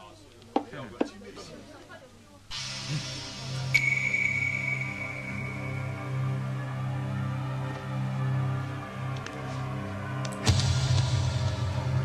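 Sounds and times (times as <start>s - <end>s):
high held tone: 2.5s - 6.6s.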